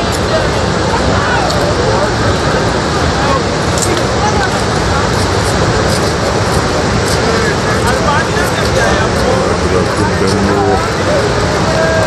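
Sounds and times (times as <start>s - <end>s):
people talking faintly: 0.0s - 12.0s
river water rushing: 0.0s - 12.0s.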